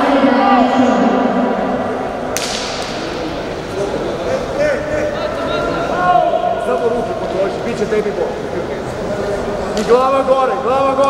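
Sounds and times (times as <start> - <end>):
hum of voices in a hall: 0.0 - 11.0
sharp smack: 2.3 - 3.1.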